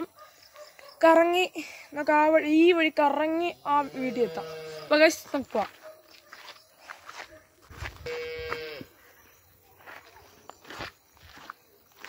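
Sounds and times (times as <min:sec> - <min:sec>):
cow mooing: 0:03.8 - 0:05.0.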